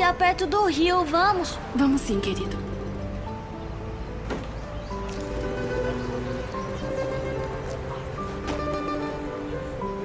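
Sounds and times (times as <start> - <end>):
soft held-note music: 0.1 - 10.0.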